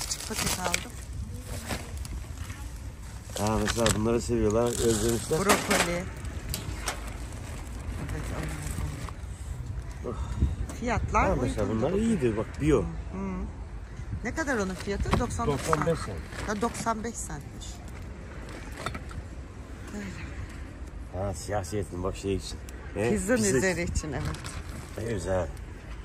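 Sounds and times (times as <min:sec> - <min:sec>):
plastic bags rustling: 0:00.0 - 0:09.2
low outdoor rumble: 0:00.0 - 0:26.0.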